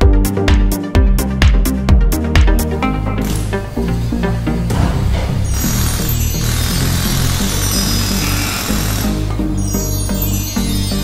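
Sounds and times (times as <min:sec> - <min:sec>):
music with steady bass line: 0:00.0 - 0:11.0.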